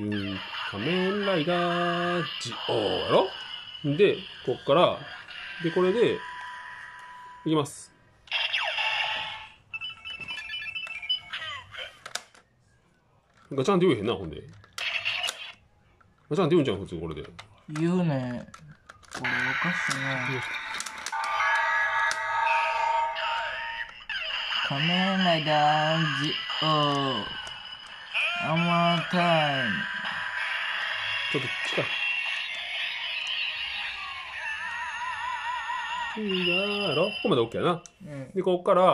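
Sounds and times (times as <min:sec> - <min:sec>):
thin high electronic tone: 0:19.2 - 0:34.5, 0:36.1 - 0:37.6.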